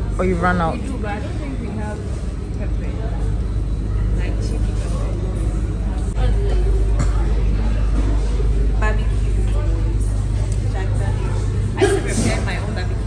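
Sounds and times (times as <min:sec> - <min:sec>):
faint voices: 0:00.8 - 0:13.0.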